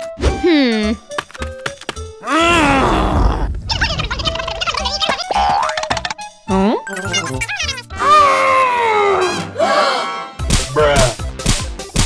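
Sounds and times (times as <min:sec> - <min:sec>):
music: 0:00.0 - 0:12.0
low rumble: 0:02.4 - 0:05.1.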